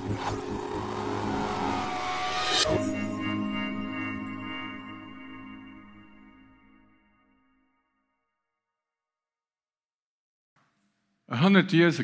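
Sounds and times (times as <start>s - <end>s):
low synthesized tones: 0.0s - 7.2s.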